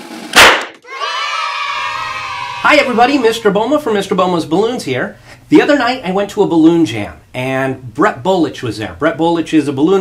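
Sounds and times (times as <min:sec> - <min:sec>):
balloon popping: 0:00.0 - 0:00.8.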